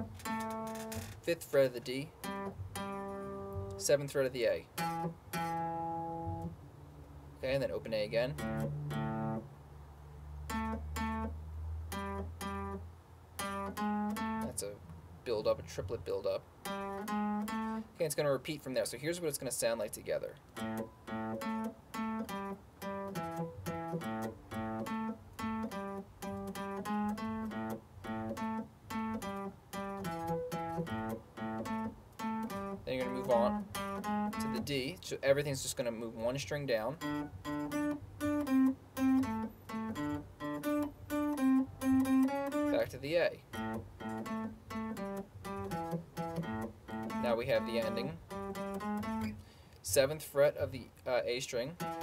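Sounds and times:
electric guitar blues riff: 0:00.0 - 0:06.6, 0:07.6 - 0:09.5, 0:10.5 - 0:15.0, 0:15.8 - 0:18.0, 0:20.5 - 0:50.0, 0:51.4 - 0:52.0.

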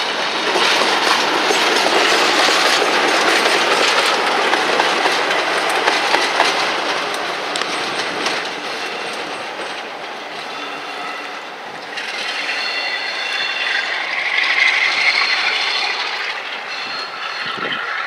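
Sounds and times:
wheels clicking over rail joints: 0:00.0 - 0:13.1
diesel locomotive engine running: 0:00.0 - 0:18.0.

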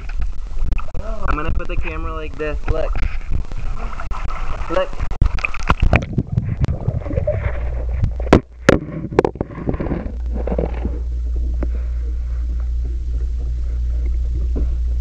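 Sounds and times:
muffled underwater rumble: 0:00.0 - 0:15.0
camera knocks and splashes: 0:07.2 - 0:11.1.

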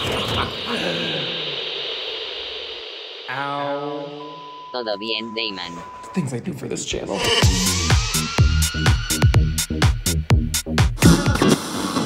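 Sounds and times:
steady hiss: 0:00.0 - 0:04.4.

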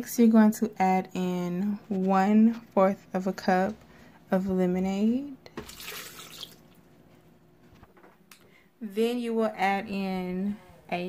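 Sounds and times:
lemonade pouring over ice: 0:05.6 - 0:06.6.

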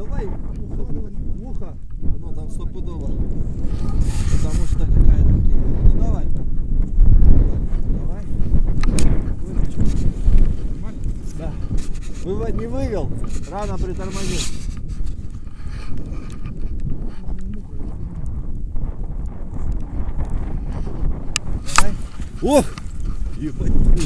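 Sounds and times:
wind buffeting microphone: 0:00.0 - 0:24.0
sharp click: 0:21.4 - 0:22.0
people's voices: 0:21.6 - 0:24.0.

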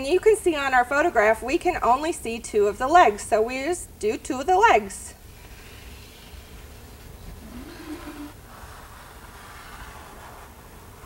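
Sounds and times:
steady low hum: 0:00.0 - 0:11.0
faint voice humming: 0:07.4 - 0:08.4.

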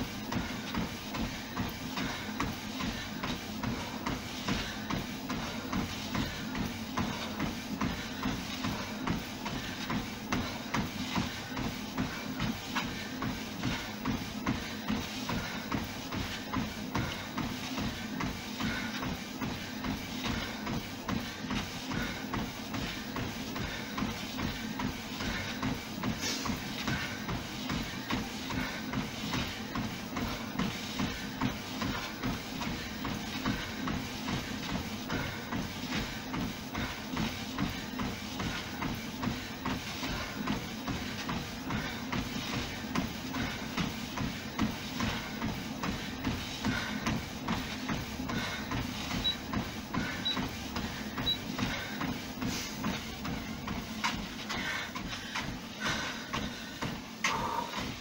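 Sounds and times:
feet striking treadmill belt: 0:00.0 - 0:58.0
treadmill motor hum: 0:00.0 - 0:58.0.

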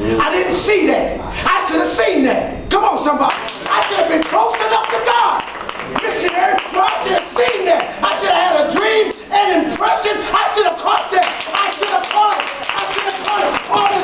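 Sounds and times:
man's loud excited voice: 0:00.0 - 0:14.0
hand claps: 0:03.3 - 0:08.2, 0:10.9 - 0:14.0.

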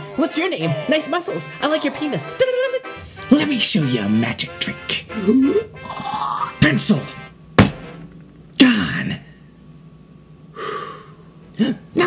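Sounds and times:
person gasping: 0:10.6 - 0:11.8.

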